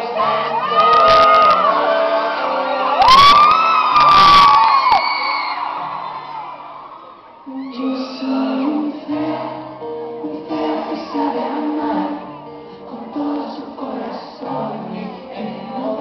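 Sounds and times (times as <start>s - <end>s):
band music: 0.0s - 6.7s, 7.4s - 16.0s
audience screaming and cheering: 0.0s - 15.3s
acoustic guitar strumming: 8.1s - 15.2s.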